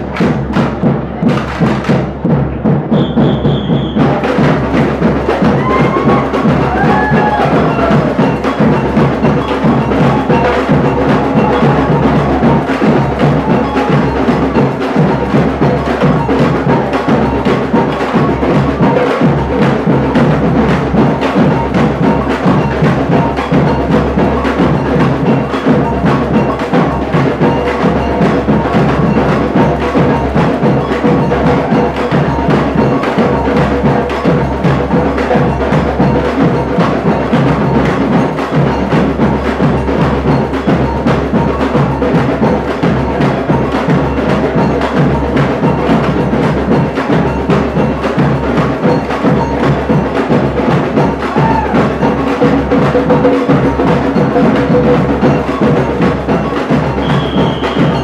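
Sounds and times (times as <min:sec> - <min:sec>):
samba band drumming: 0:00.0 - 0:58.0
small drums struck with sticks: 0:00.0 - 0:58.0.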